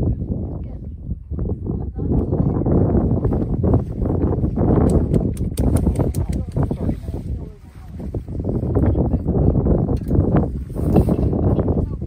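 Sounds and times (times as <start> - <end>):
low handling or wind rumble: 0.0 - 12.0.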